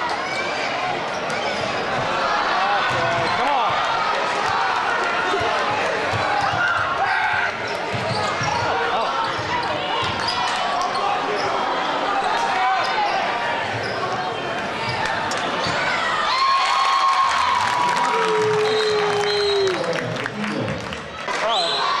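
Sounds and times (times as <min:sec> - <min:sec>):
crowd chatter and shouts: 0:00.0 - 0:22.0.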